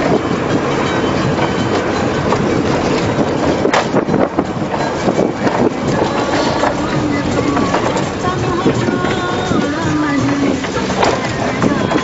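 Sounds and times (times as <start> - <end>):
engine and tyre rumble: 0.0 - 12.0
vehicle body rattling and knocking: 0.0 - 12.0.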